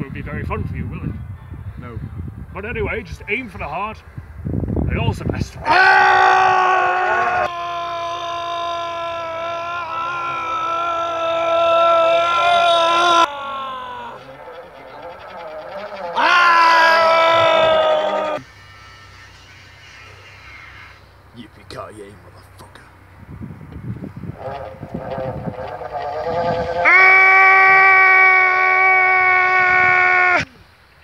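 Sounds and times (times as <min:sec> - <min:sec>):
person yelling: 0:05.6 - 0:14.3, 0:16.2 - 0:18.4.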